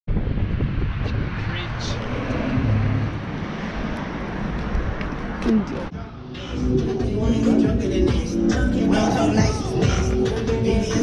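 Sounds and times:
steady traffic: 0.1 - 11.0
man talking: 1.0 - 2.0.

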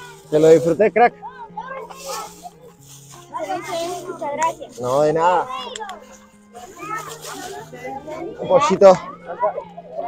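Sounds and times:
background music with low bass: 0.0 - 10.0
children talking: 0.0 - 10.0.

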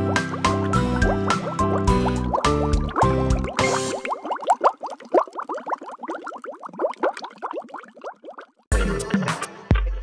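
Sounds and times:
cartoon underwater bubbling: 0.0 - 9.4.

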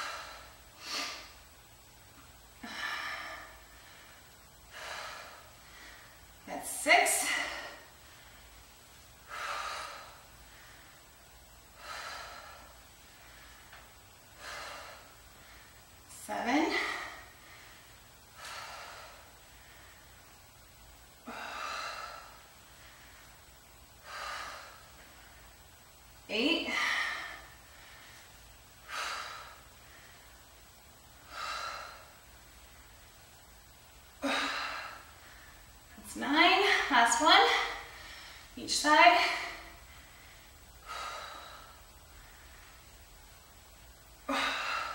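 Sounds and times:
woman breathing hard: 0.0 - 1.5, 2.2 - 6.5, 7.1 - 44.9.

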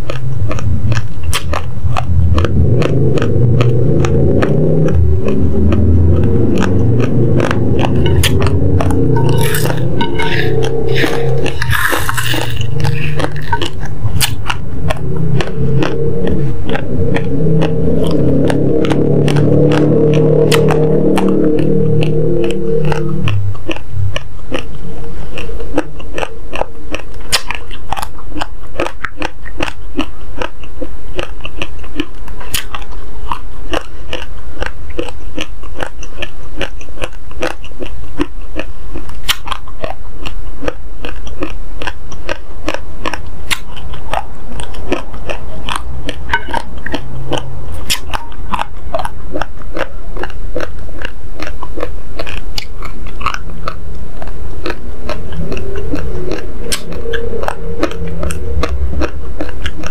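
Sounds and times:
crunching dry rice: 0.0 - 59.9.

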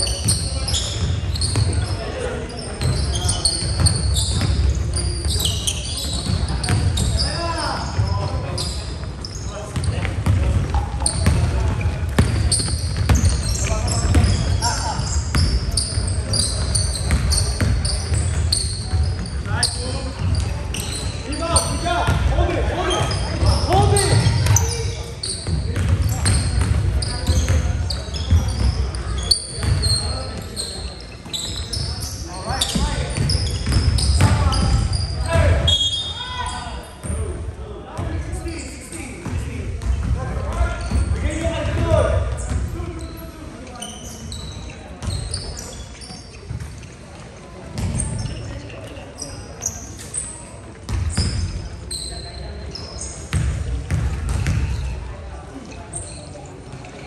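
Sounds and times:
sneakers squeaking: 0.0 - 57.0
basketball bouncing on wooden floor: 9.8 - 14.5, 25.4 - 27.7, 32.7 - 34.8, 53.3 - 54.8.

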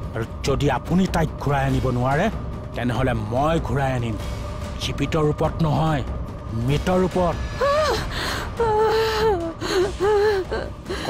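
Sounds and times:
woman crying: 7.5 - 11.0.

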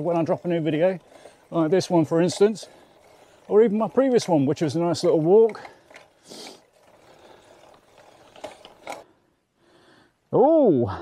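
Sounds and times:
freehub ticking: 0.0 - 9.1
bike coasting on dirt: 0.0 - 9.3.

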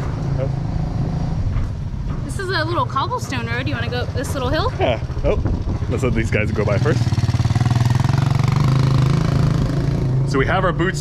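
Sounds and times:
small motorcycle passing: 2.6 - 11.0.

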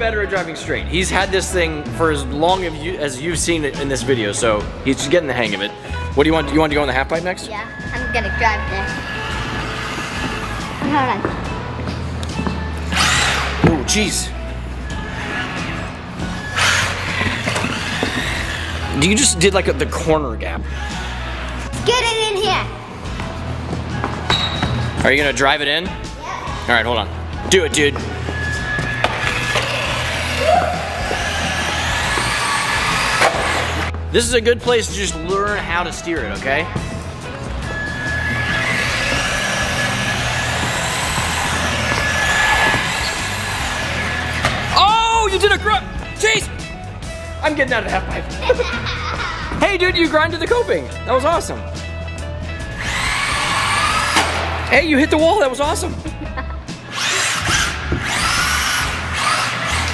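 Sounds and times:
background music: 0.0 - 59.9
rc car driving on concrete: 7.8 - 10.8, 12.9 - 13.6, 14.9 - 19.4, 28.3 - 33.9, 37.8 - 44.7, 52.7 - 54.6, 56.9 - 59.9.

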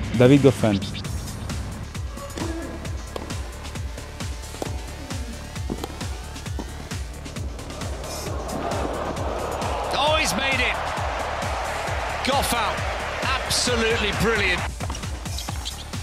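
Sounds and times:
music with thumping beat: 0.8 - 16.0.

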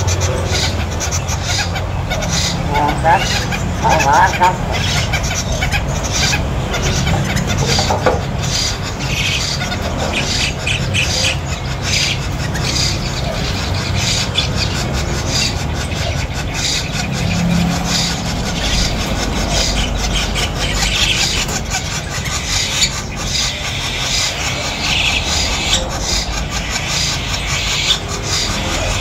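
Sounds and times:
birds squealing and chirping: 0.0 - 29.0.

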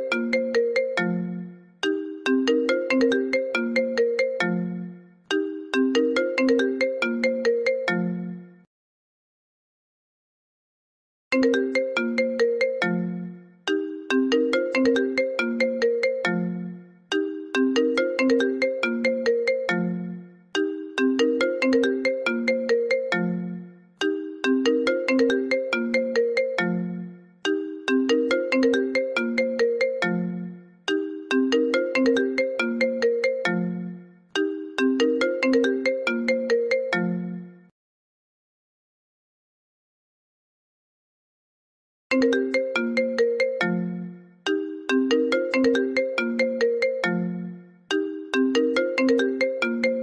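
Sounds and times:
phone ringtone melody: 0.0 - 8.6, 11.4 - 37.7, 42.1 - 50.0.

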